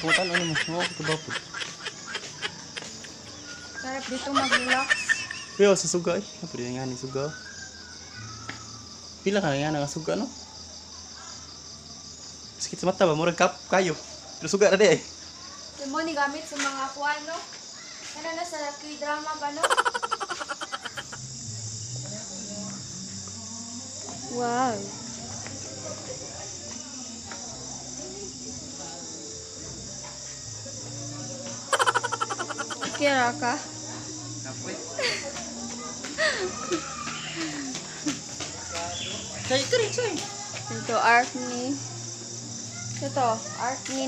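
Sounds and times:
person laughing: 0:00.0 - 0:03.2, 0:04.1 - 0:05.6, 0:19.6 - 0:21.2, 0:31.7 - 0:33.0, 0:35.0 - 0:35.4
crickets chirring: 0:00.0 - 0:44.0.

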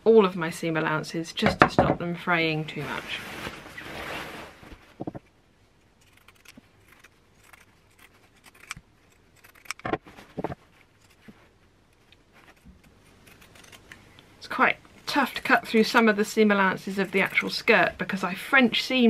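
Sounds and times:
fabric rustle: 0:02.7 - 0:05.2.

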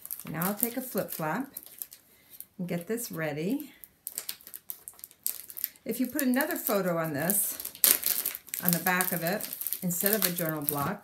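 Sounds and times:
plastic sheet crinkling: 0:00.0 - 0:11.0.

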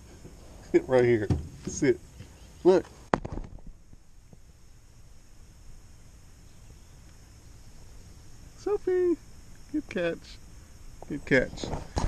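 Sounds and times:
low rumble and hiss: 0:00.0 - 0:12.0.

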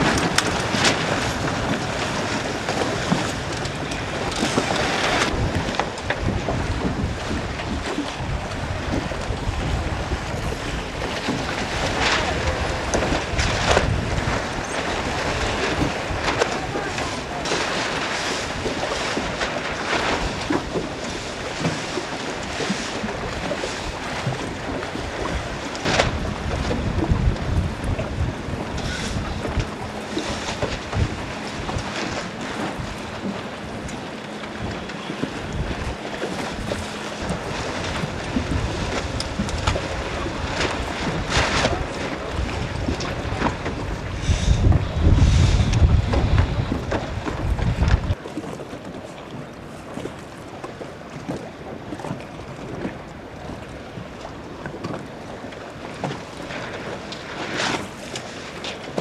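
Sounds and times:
waves splashing on hulls: 0:00.0 - 0:59.0
wind buffeting microphone: 0:00.0 - 0:59.0.

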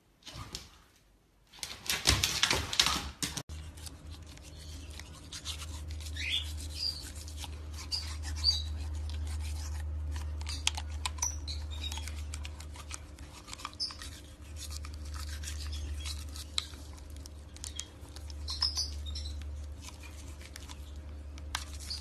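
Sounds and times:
toothbrush scraping teeth: 0:03.5 - 0:20.9.

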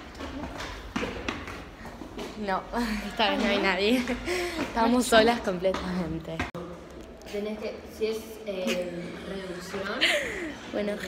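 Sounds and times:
footsteps climbing stairs: 0:00.0 - 0:06.6.

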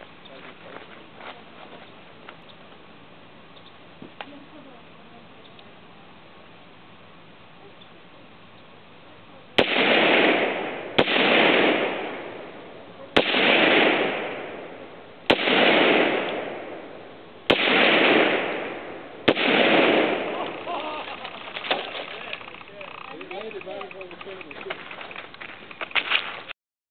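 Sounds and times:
gunshots with rumbling tail: 0:09.6 - 0:20.7.

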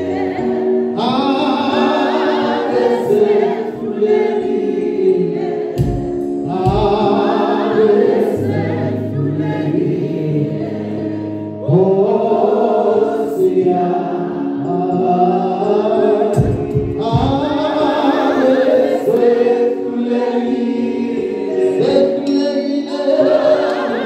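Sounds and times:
male gospel group singing: 0:00.0 - 0:24.0.

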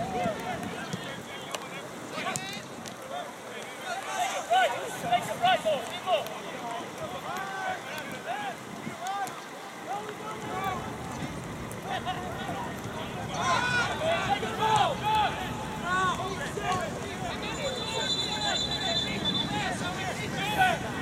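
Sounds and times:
players shouting: 0:00.0 - 0:21.0.

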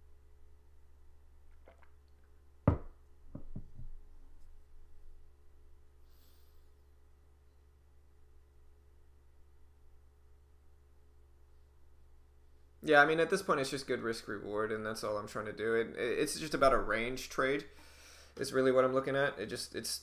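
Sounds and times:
faint steady hum: 0:00.0 - 0:20.0
sharp knock: 0:02.7 - 0:03.7.

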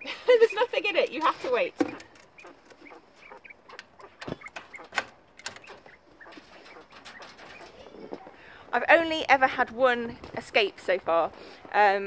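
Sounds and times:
quail peeping: 0:00.6 - 0:08.4.

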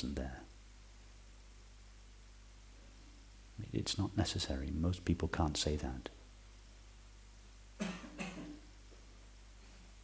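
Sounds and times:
person coughing: 0:07.8 - 0:08.6.

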